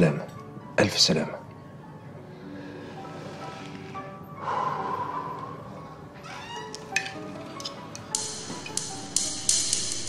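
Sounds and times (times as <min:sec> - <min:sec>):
soft background music: 0:00.0 - 0:10.0
door hinge creaking: 0:03.0 - 0:04.2, 0:06.0 - 0:08.0.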